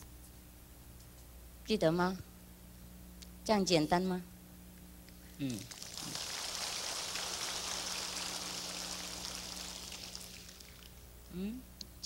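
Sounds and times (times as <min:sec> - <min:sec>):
audience applauding: 0:05.7 - 0:10.9.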